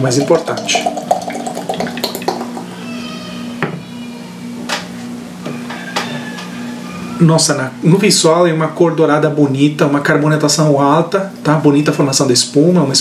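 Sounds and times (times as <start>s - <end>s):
beer pouring into glass: 0.0s - 2.7s
beer foaming: 0.0s - 3.5s.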